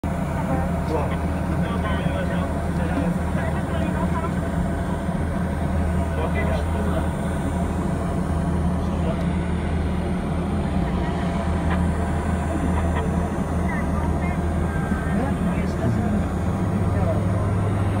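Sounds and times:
ride car droning on track: 0.0s - 18.0s.

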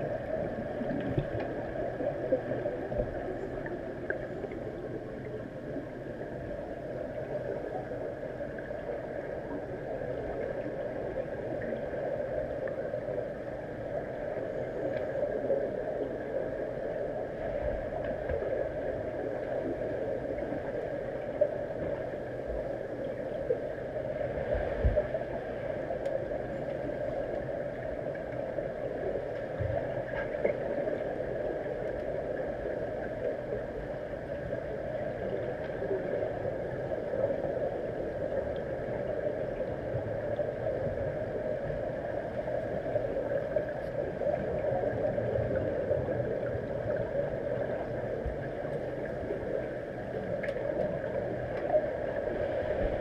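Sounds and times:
underwater pool hum: 0.0s - 53.0s.

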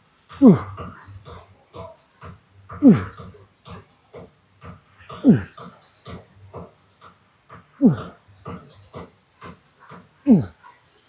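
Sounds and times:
man grunting with effort: 0.4s - 0.8s, 2.8s - 3.1s, 5.2s - 5.5s, 7.8s - 8.0s, 10.3s - 10.5s.

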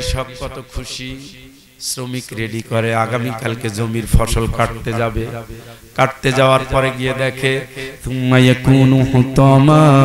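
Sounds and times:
man chanting sermon: 0.0s - 10.0s.

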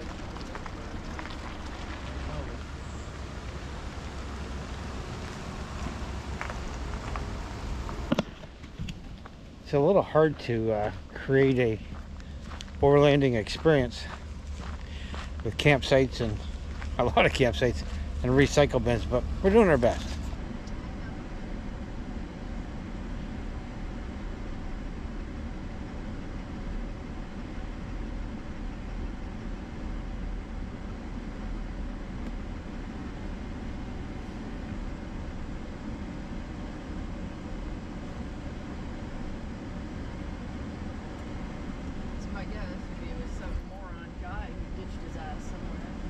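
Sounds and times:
pickup truck engine and tyres: 0.0s - 46.0s.

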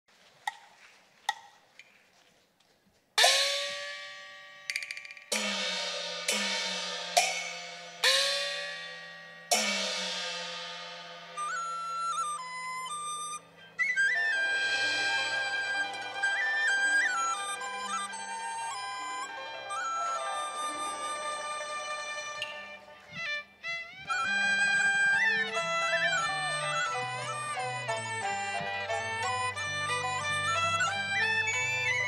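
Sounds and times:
sharp percussion clicks: 3.2s - 11.6s
high wind instrument melody: 3.2s - 32.0s
opera ensemble playing: 7.2s - 32.0s.

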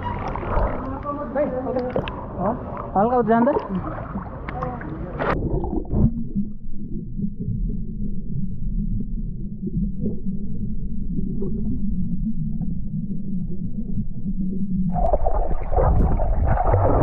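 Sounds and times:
faint underwater bubbling: 0.0s - 17.0s
muffled underwater rumble: 0.0s - 17.0s.

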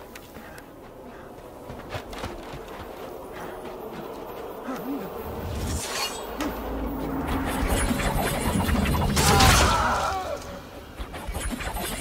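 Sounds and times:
wavering low buzzing hum: 0.0s - 9.4s.

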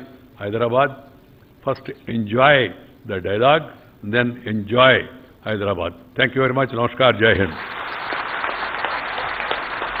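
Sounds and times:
audience applauding: 7.5s - 10.0s.

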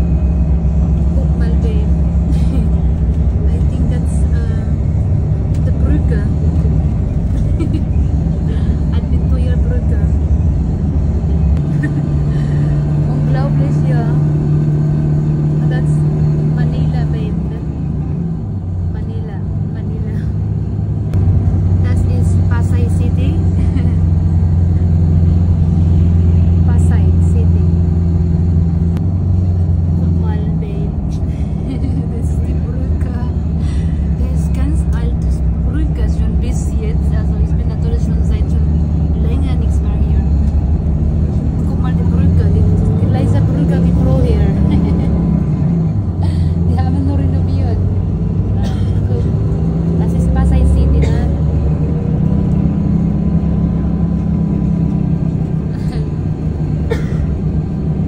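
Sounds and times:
bus engine and road noise: 0.0s - 58.0s.

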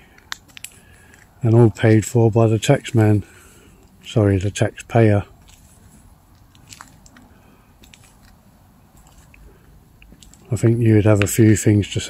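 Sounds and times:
small crunches and clicks: 0.0s - 3.2s, 5.4s - 11.4s.

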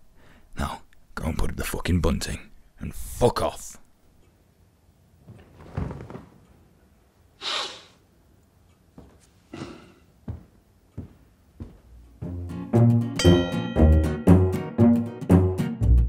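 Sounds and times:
man breathing out: 7.4s - 8.0s
man sniffing: 7.4s - 8.1s, 9.5s - 10.2s
plucked strings music with deep bass: 12.2s - 16.0s.

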